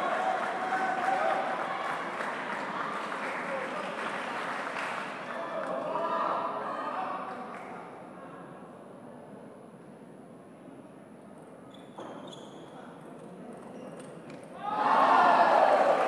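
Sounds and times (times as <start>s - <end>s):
crowd noise: 0.0s - 16.0s
hush of a large hall: 0.0s - 16.0s.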